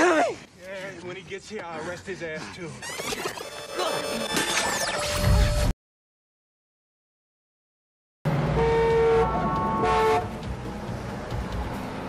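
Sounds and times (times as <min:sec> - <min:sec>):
car horn honking: 0:08.5 - 0:10.3.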